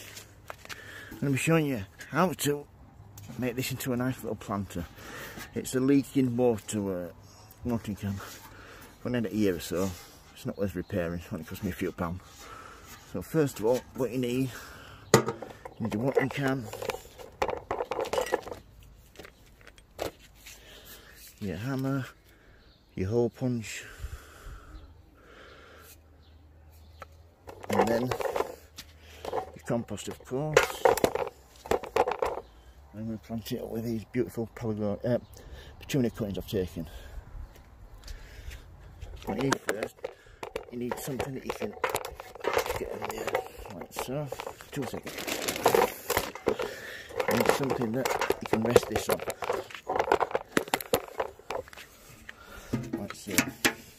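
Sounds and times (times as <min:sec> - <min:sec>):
metal watering can clattering: 0:15.1 - 0:18.6, 0:39.3 - 0:51.7, 0:52.6 - 0:53.9
rustling: 0:39.0 - 0:53.9
metallic clinking and rattling: 0:39.2 - 0:51.8.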